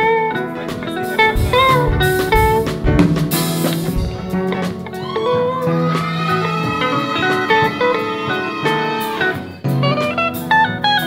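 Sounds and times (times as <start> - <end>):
electric guitar solo: 3.8 - 11.0.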